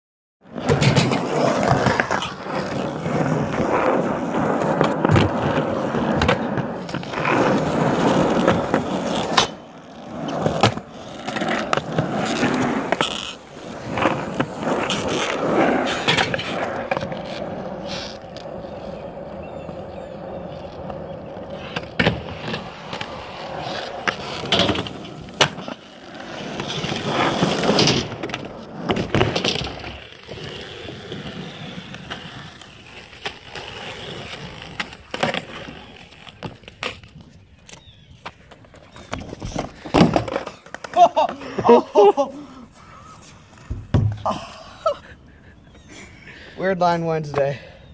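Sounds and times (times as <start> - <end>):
skateboard wheels rolling on concrete: 0.4 - 47.9
skateboard clacking on ground: 4.5 - 41.8.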